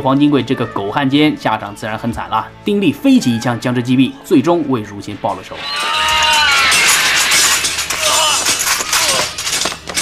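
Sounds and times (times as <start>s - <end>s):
broken glass clattering down steps: 5.6s - 10.0s
glass panes shattering: 5.6s - 10.0s.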